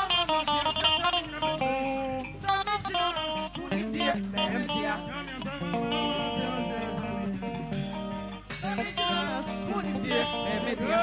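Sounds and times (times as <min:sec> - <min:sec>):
live band with guitar: 0:00.0 - 0:11.0.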